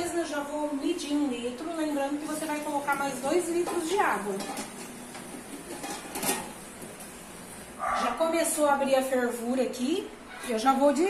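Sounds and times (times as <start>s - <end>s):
kitchenware clattering in sink: 3.5s - 6.6s.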